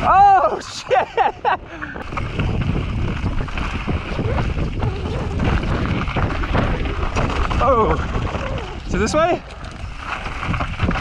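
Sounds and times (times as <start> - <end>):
wind rushing over microphone: 0.0 - 11.0
tyres rolling over dirt and rock: 2.0 - 11.0.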